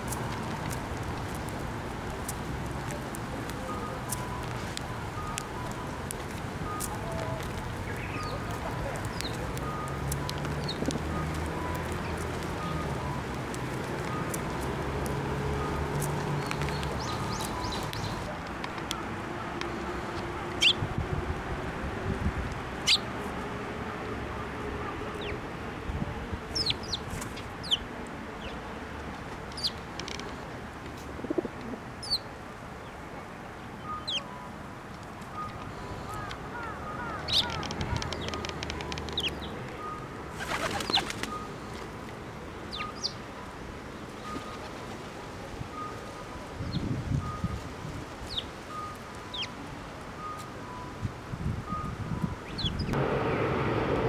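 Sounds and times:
sparrows chirping: 6.7 - 11.3, 16.3 - 18.3, 22.8 - 23.1, 29.6 - 29.8, 32.0 - 33.0, 33.8 - 34.3, 35.4 - 41.7, 42.7 - 43.2, 48.2 - 49.6, 52.4 - 53.0
wings fluttering: 40.4 - 41.4.

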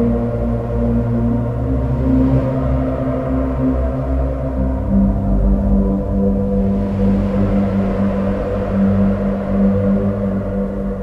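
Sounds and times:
synthesizer low pad: 0.0 - 11.0.

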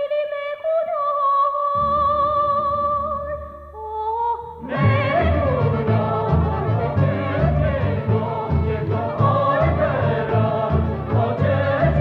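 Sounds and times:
group of voices singing: 4.6 - 12.0
violin: 4.6 - 12.0.

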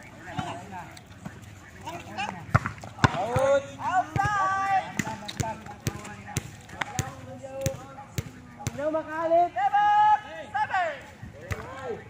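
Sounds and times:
players shouting and calling: 0.0 - 12.0
volleyball smacks: 2.5 - 8.8.

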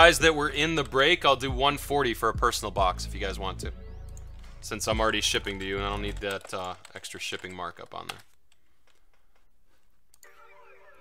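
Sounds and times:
faint keyboard typing: 4.1 - 10.3.

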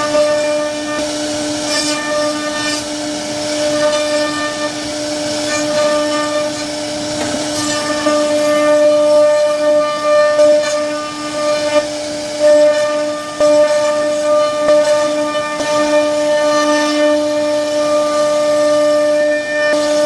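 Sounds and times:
router spindle whining: 0.0 - 20.0.

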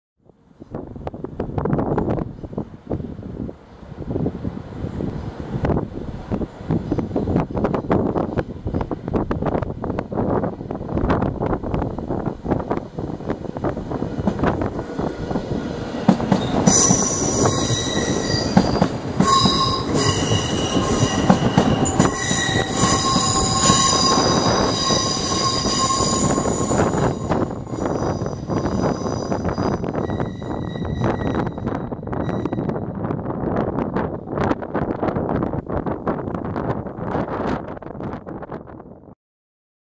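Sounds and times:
electric train rumbling: 0.3 - 39.1
wind buffeting microphone: 0.3 - 39.1.

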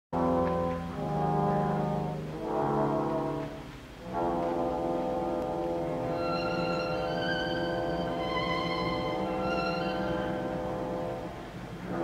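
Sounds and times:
orchestra sustained chords: 0.2 - 12.0.

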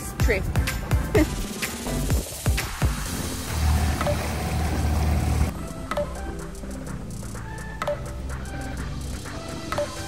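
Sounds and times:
outboard engine rumble: 0.0 - 9.6
background music: 0.0 - 10.0
rushing water: 0.6 - 5.5.

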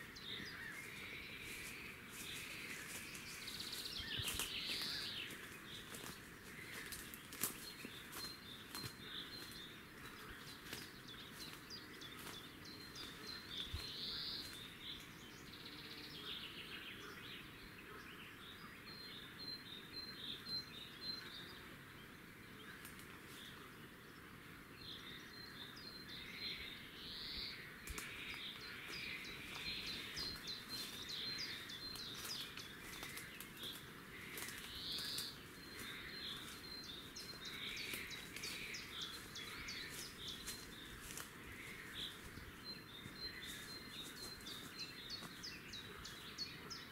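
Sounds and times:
birds chirping: 0.0 - 46.9.

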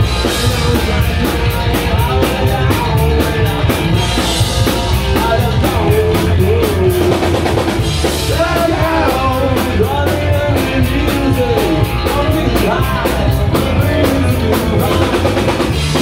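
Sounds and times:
distorted electric guitars: 0.0 - 16.0
drum kit fast beat: 0.0 - 16.0
man singing: 0.0 - 16.0.

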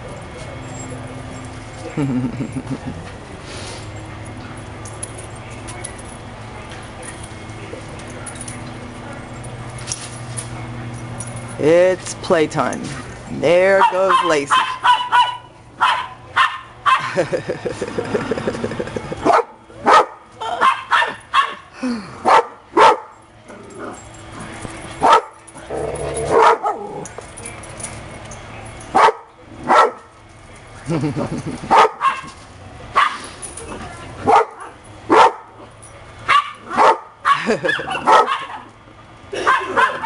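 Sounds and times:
small dogs barking and yipping: 13.6 - 17.2, 19.1 - 30.1, 31.5 - 40.0.

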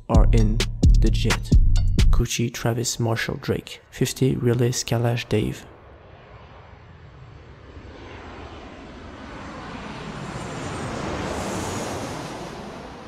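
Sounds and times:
jet aircraft passing overhead: 2.6 - 13.0.

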